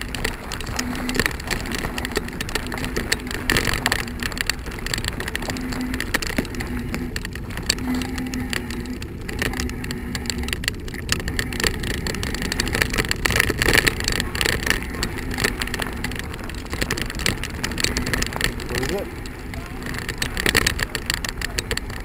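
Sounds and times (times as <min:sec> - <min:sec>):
bicycle tyres rolling on gravel: 0:00.0 - 0:22.0.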